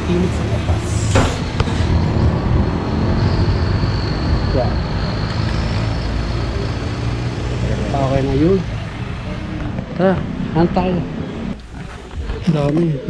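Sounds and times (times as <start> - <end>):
road traffic passing close by: 0.0 - 13.0.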